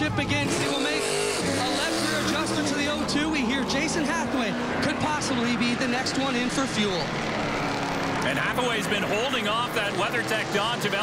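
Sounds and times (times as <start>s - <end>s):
commentator speaking: 0.0s - 7.2s, 8.2s - 11.0s
race car engine running: 0.0s - 11.0s.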